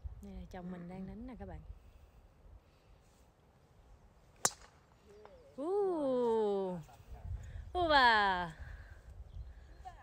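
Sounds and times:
golf club striking ball: 0:04.4 - 0:04.8.

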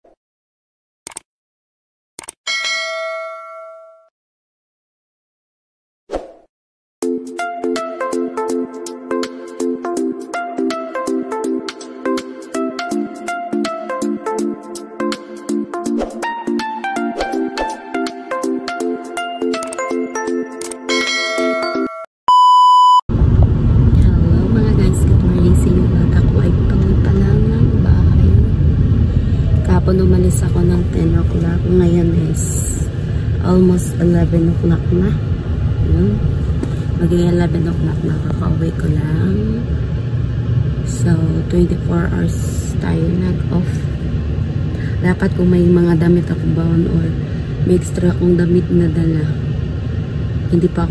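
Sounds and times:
bright bell ding: 0:02.5 - 0:04.1, 0:20.9 - 0:22.1
electronic beep tone: 0:22.3 - 0:23.0
woman talking: 0:23.9 - 0:28.6, 0:29.5 - 0:39.7, 0:40.9 - 0:44.0, 0:44.8 - 0:49.4, 0:50.5 - 0:50.9.

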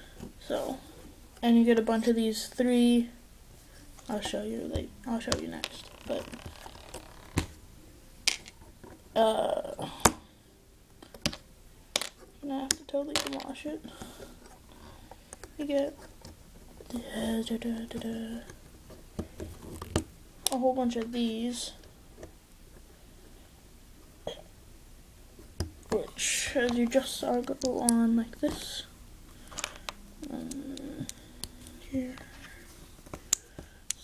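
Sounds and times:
plastic toy bricks handled: 0:04.0 - 0:07.5, 0:08.3 - 0:08.6, 0:11.0 - 0:13.6, 0:25.9 - 0:32.4
plastic bricks clicking: 0:08.3 - 0:08.6, 0:12.0 - 0:13.5.

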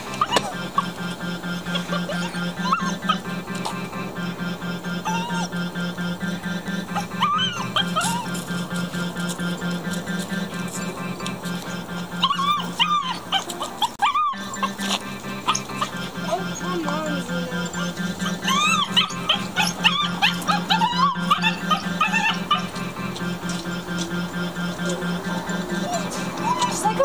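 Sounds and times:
background music with steady beat: 0:00.0 - 0:27.0
puppy whining: 0:00.1 - 0:03.8, 0:05.0 - 0:05.6, 0:06.9 - 0:10.0, 0:10.7 - 0:22.9, 0:24.8 - 0:27.0.

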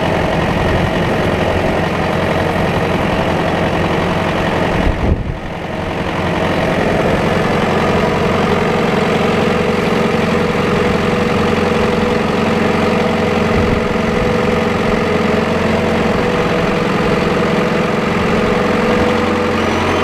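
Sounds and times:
tractor diesel engine running: 0:00.0 - 0:20.0.

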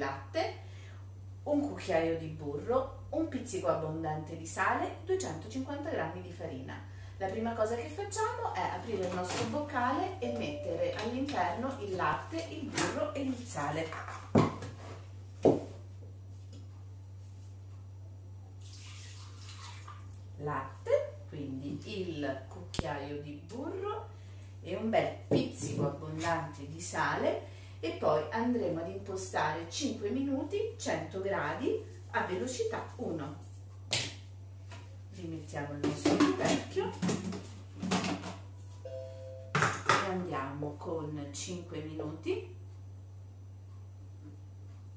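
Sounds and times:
steady low hum: 0:00.0 - 0:18.7, 0:20.1 - 0:37.8, 0:38.4 - 0:44.9
milk pouring into steel jug: 0:18.6 - 0:20.2.

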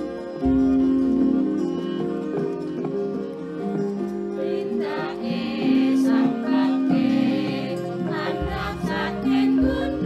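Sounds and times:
gamelan music: 0:00.0 - 0:10.0.

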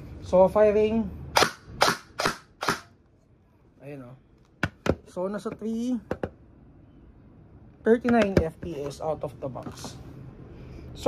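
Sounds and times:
airsoft rifle shots: 0:01.4 - 0:03.0.

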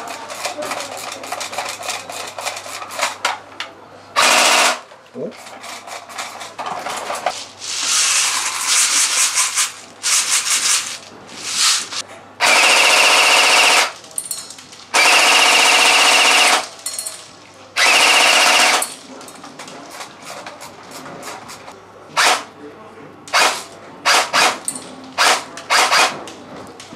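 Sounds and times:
airsoft gun full-auto bursts: 0:04.2 - 0:04.8, 0:12.4 - 0:14.0, 0:15.0 - 0:16.7, 0:17.8 - 0:18.8, 0:25.2 - 0:26.1
pellets hitting metal pans: 0:06.5 - 0:12.0.

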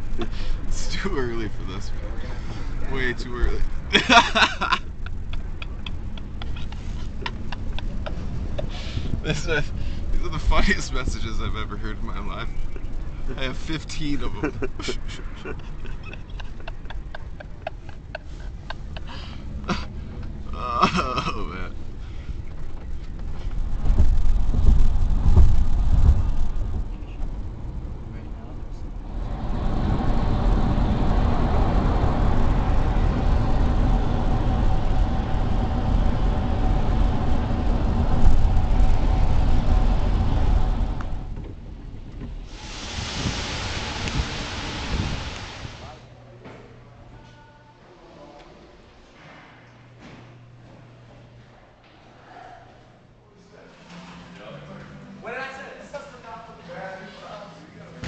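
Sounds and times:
vehicle cabin rumble: 0:00.0 - 0:45.9
road noise inside car: 0:00.0 - 0:46.3
man's stifled laughter: 0:03.9 - 0:09.8, 0:14.4 - 0:20.0, 0:20.6 - 0:21.6
steady hiss: 0:42.4 - 0:46.1.

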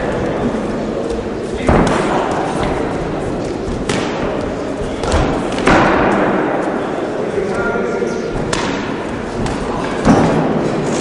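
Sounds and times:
hall background noise: 0:00.0 - 0:11.0
boxing gloves thudding: 0:08.3 - 0:10.6.

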